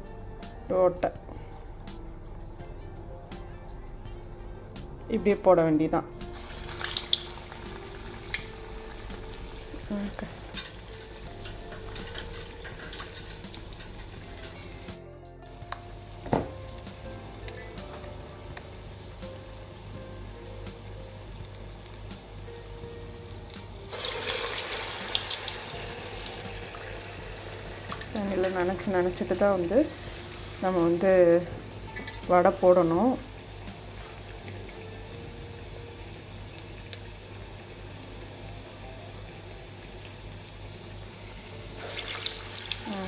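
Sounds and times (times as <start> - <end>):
batter sizzling in hot oil: 6.2 - 14.9, 15.8 - 43.0.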